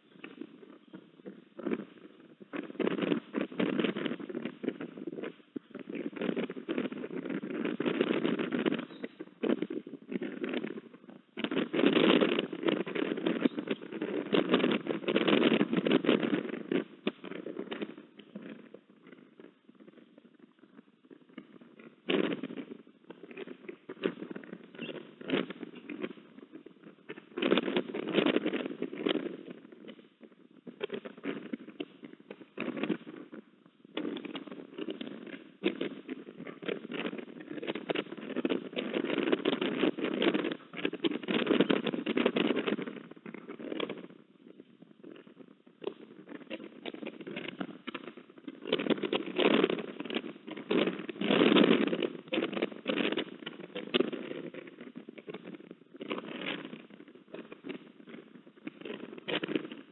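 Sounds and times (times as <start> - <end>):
wind gusting on microphone: 0.0 - 59.9.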